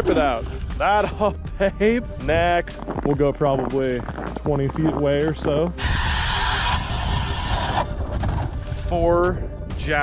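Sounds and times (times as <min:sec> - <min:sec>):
blade hissing through ice: 0:05.8 - 0:07.9.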